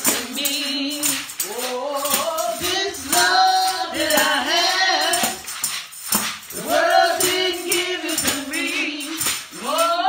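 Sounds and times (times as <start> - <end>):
woman singing into microphone: 0.0 - 5.4, 6.6 - 10.0
tambourine jingling: 0.0 - 10.0.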